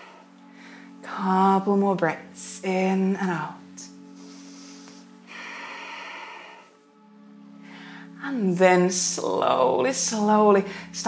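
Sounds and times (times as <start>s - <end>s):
woman breathing slowly: 0.0s - 1.0s, 4.0s - 8.2s
soft background music: 0.0s - 11.0s.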